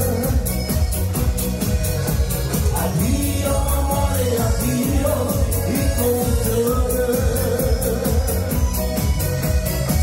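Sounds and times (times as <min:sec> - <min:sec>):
man singing into a microphone: 0:00.0 - 0:01.0, 0:02.7 - 0:08.8
pop music with steady beat: 0:00.0 - 0:10.0.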